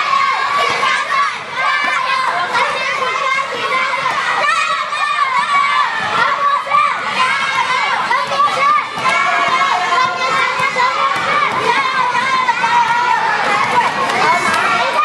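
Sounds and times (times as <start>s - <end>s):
children shouting and cheering: 0.0s - 15.0s.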